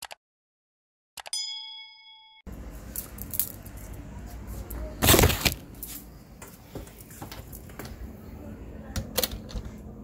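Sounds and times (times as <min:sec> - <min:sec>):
bell ding: 0:01.4 - 0:02.5.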